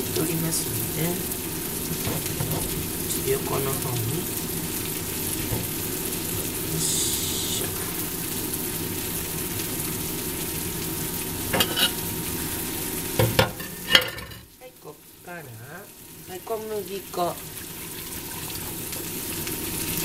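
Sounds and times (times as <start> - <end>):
food sizzling in a frying pan: 0.0 - 20.0.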